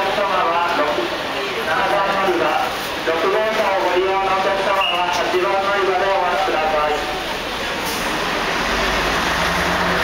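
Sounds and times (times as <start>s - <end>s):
bus diesel engine rumble: 0.0s - 10.0s
tyre and road noise: 0.0s - 10.0s.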